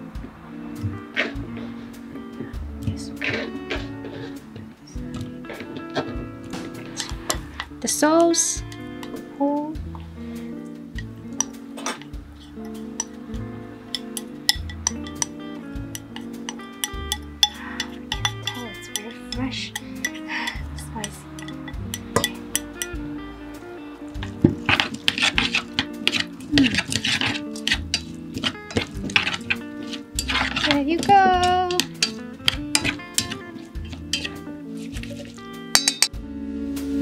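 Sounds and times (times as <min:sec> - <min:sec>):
background music with bass line: 0:00.0 - 0:37.0
chopsticks scraping ceramic bowl: 0:03.1 - 0:04.4, 0:06.9 - 0:07.7, 0:11.4 - 0:13.2, 0:13.9 - 0:22.9, 0:24.2 - 0:36.1
stirring cucumber in a pot: 0:13.9 - 0:19.1, 0:19.7 - 0:22.9, 0:24.1 - 0:36.1
chopsticks clicking against metal pot: 0:14.0 - 0:15.4, 0:16.0 - 0:23.0, 0:24.7 - 0:34.4.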